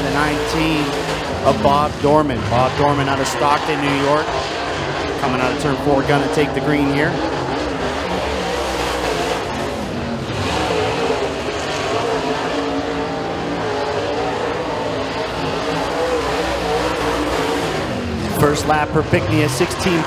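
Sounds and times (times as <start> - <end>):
race car engine at full throttle: 0.0 - 20.0.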